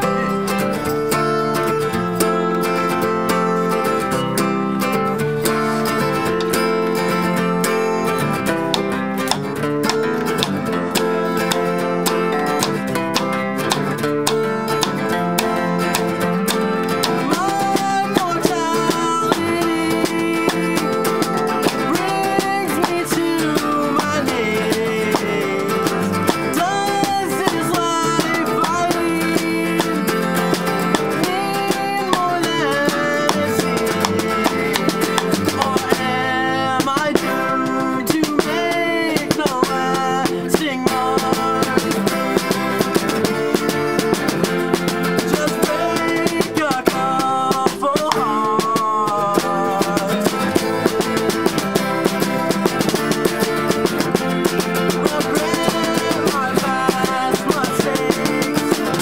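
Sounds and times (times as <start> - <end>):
acoustic guitars picked and strummed: 0.0 - 59.0
person singing: 0.0 - 59.0.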